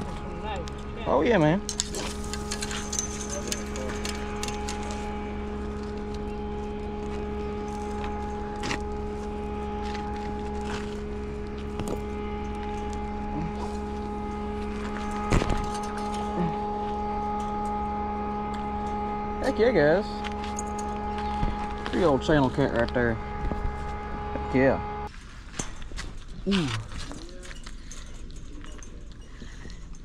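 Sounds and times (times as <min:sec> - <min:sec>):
low rumble: 0:00.0 - 0:25.1
steady hum: 0:00.0 - 0:30.0.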